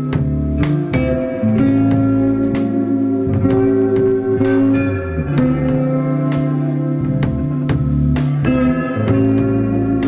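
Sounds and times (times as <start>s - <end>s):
electric guitar notes ringing: 0.0s - 10.0s
low bass line: 0.0s - 10.0s.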